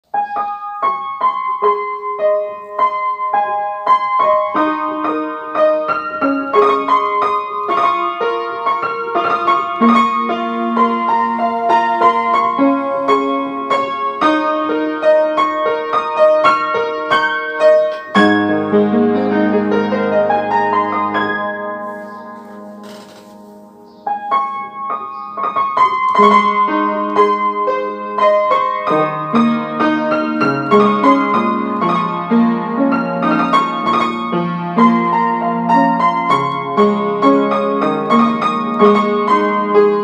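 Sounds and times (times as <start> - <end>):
piano music: 0.0 - 40.0.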